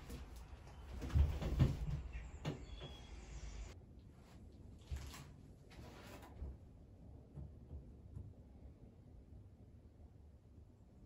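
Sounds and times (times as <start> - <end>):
dull thumps and knocks: 0.9 - 3.0.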